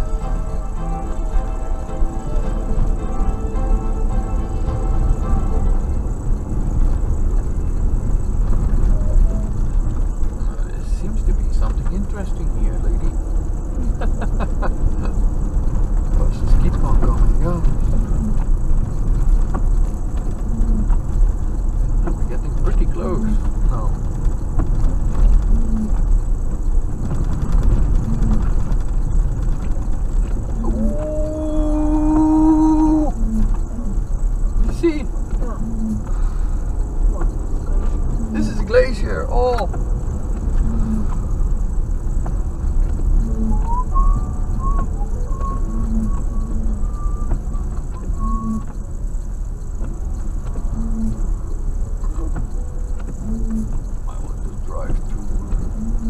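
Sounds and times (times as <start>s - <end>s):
held note: 0.0s - 7.0s
car engine and tyres on gravel: 0.0s - 56.0s
faint voices: 30.6s - 36.2s.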